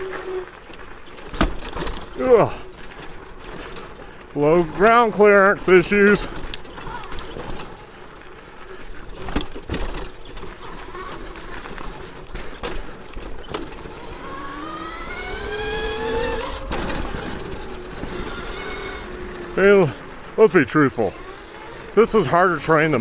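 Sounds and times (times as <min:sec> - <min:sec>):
bike knocking over rough ground: 0:00.0 - 0:23.0
tyre and wind noise: 0:00.0 - 0:23.0
electric motor whining: 0:13.7 - 0:20.4.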